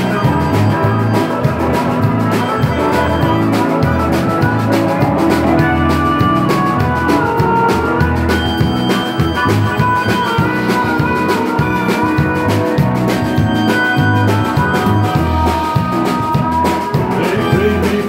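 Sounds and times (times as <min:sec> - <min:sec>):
electronic keyboard: 0:00.0 - 0:18.0
harmonica playing: 0:00.0 - 0:18.0
steady drum beat: 0:00.0 - 0:18.0.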